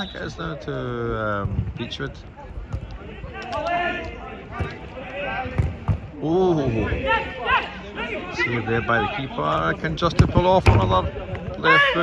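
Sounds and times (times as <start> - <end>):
players shouting: 1.8 - 12.0.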